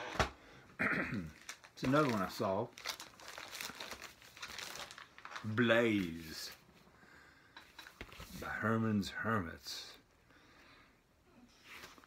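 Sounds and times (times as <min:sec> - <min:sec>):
record jackets rustling: 0:01.3 - 0:06.9.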